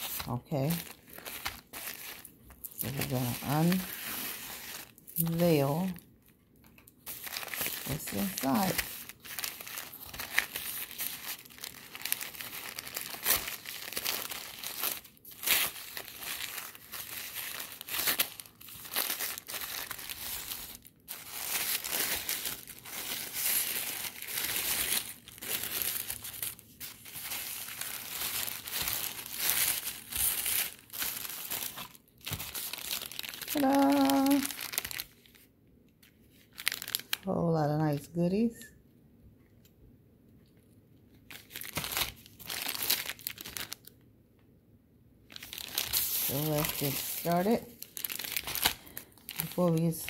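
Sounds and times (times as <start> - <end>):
tissue paper crinkling: 0.0 - 6.0, 6.7 - 35.4, 36.0 - 37.4, 41.2 - 43.9, 45.3 - 50.0.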